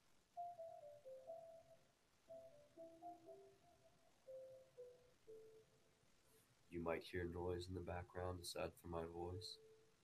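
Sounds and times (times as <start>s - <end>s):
soft meditation music: 0.3s - 10.0s.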